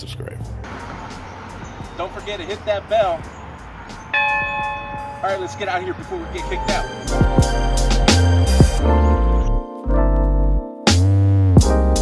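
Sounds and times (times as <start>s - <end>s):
large bell ringing: 0.7s - 8.8s.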